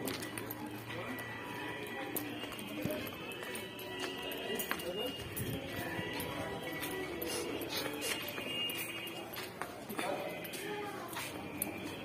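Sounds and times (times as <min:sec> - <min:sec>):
background music: 0:00.0 - 0:12.0
footsteps on pavement: 0:00.0 - 0:12.0
indistinct voices: 0:00.0 - 0:12.0.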